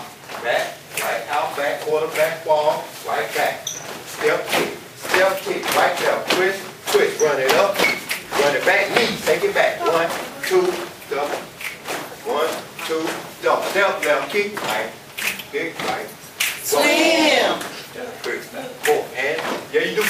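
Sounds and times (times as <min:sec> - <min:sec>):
person talking: 0:06.9 - 0:11.4.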